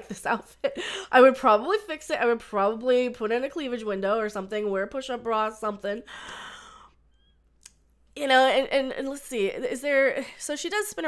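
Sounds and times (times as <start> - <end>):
woman breathing: 0.7 - 1.2, 6.0 - 7.4.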